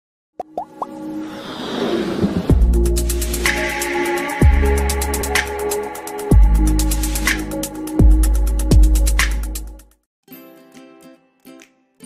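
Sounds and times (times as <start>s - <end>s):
electronic riser: 1.0s - 3.8s.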